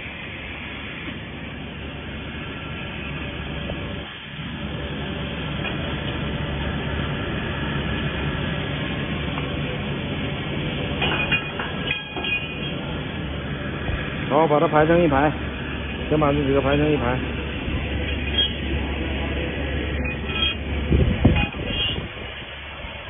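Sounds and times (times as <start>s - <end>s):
factory machinery running: 0.0s - 23.0s.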